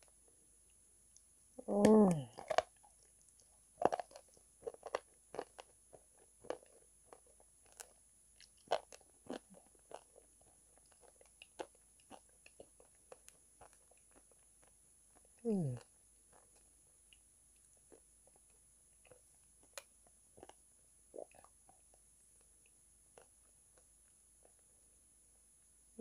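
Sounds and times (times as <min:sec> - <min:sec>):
person humming: 0:01.6 - 0:02.3, 0:15.5 - 0:15.8
biting and chewing chalk: 0:02.3 - 0:20.6.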